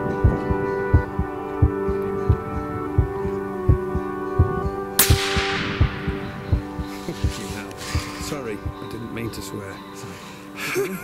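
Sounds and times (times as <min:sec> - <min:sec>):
music with slow pulsing beat: 0:00.0 - 0:11.0
rifle shot: 0:05.0 - 0:08.2.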